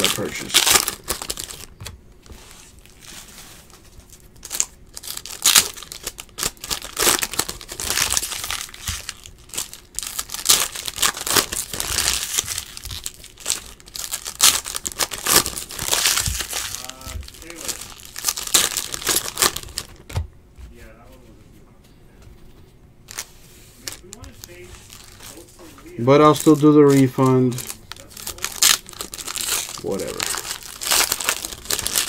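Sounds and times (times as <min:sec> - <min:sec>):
foil wrappers tearing and crinkling: 0:00.0 - 0:20.1, 0:23.1 - 0:32.0.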